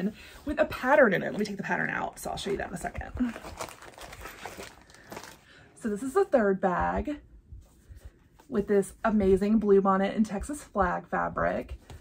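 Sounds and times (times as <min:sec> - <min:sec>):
woman speaking: 0:00.0 - 0:03.5, 0:05.8 - 0:07.3, 0:08.4 - 0:11.8
vinyl bag and paper rustling: 0:00.4 - 0:05.6.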